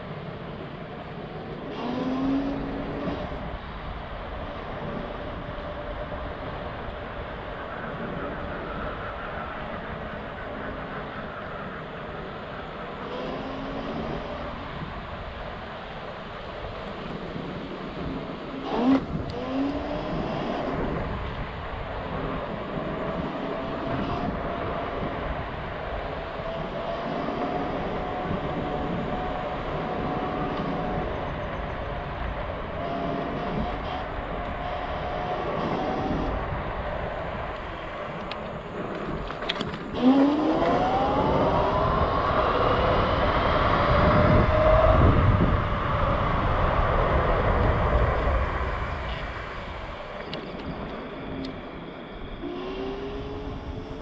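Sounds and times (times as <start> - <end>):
electric scooter motor whining: 0.0 - 54.0
wind noise: 0.0 - 54.0.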